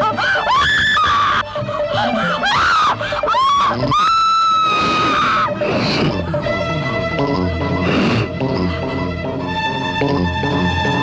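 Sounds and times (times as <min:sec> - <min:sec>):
dramatic film music: 0:00.0 - 0:11.0
woman screaming: 0:00.2 - 0:01.4, 0:02.4 - 0:05.6.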